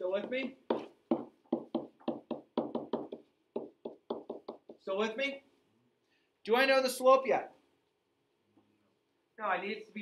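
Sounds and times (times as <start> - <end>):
pen tapping on whiteboard: 0.2 - 4.8.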